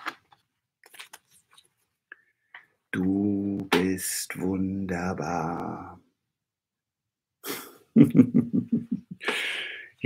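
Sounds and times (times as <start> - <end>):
man laughing: 7.4 - 9.6.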